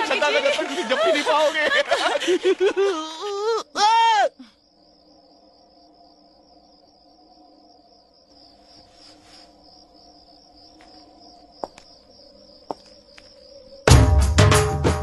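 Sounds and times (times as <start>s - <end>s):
crickets chirping: 0.0s - 14.4s.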